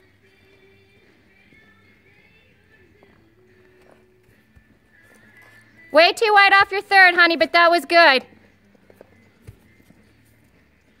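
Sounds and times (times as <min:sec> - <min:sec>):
horse hoofbeats on dirt: 0:00.0 - 0:11.0.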